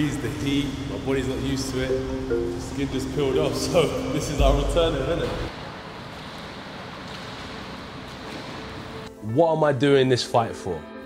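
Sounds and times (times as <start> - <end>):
indoor swimming pool ambience: 0.0 - 10.8.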